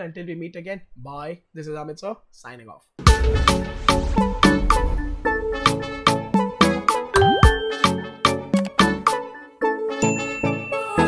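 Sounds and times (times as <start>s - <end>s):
jingle of struck notes: 7.2s - 8.2s, 10.0s - 11.0s.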